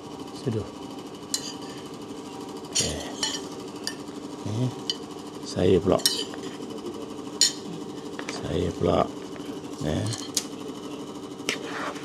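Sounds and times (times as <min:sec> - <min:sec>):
steady hum: 0:00.0 - 0:12.0
spoon clinking against a plate: 0:01.3 - 0:01.8, 0:02.7 - 0:04.1, 0:04.8 - 0:05.1, 0:06.0 - 0:06.6, 0:07.4 - 0:08.3, 0:10.0 - 0:10.5.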